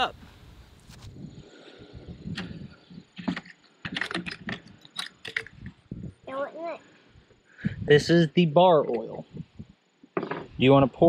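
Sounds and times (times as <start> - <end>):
plastic items clicking and knocking: 3.2 - 5.7.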